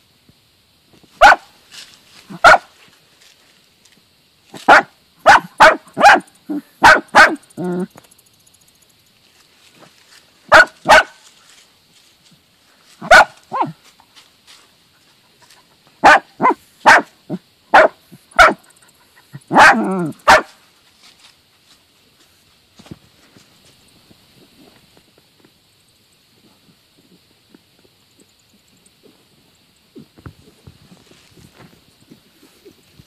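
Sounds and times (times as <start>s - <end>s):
dogs barking: 1.2s - 1.5s, 2.4s - 2.7s, 4.6s - 7.9s, 10.5s - 11.2s, 13.0s - 13.8s, 16.0s - 20.6s.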